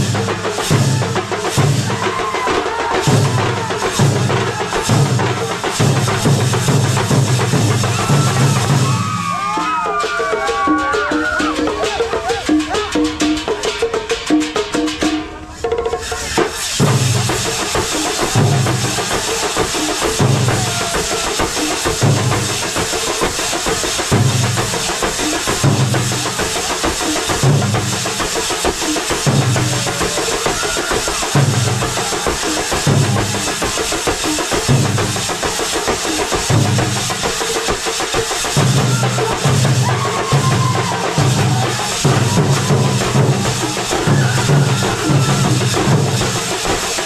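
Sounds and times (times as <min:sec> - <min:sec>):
bass drums pounding: 0:00.0 - 0:02.1, 0:02.8 - 0:09.2, 0:38.6 - 0:46.8
clashing cymbals: 0:00.0 - 0:47.0.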